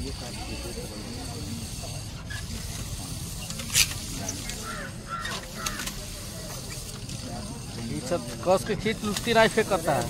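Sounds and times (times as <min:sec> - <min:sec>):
blade grinding on wheel: 0:00.0 - 0:10.0
rumble of turning wheel: 0:00.0 - 0:10.0.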